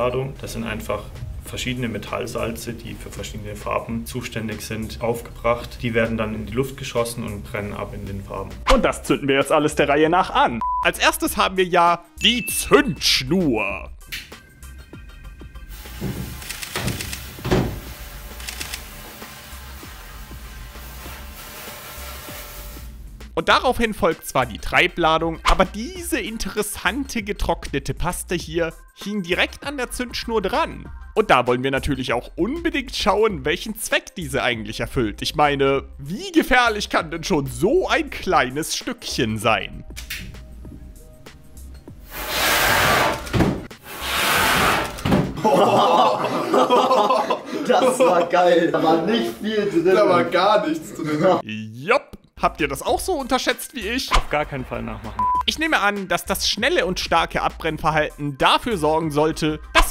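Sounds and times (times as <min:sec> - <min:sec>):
background music with bass: 0:00.0 - 0:16.6, 0:17.4 - 0:47.1, 0:52.2 - 0:59.9
firework crackles: 0:15.7 - 0:23.0
firework fuse fizzing: 0:15.7 - 0:23.0, 0:42.0 - 0:43.1.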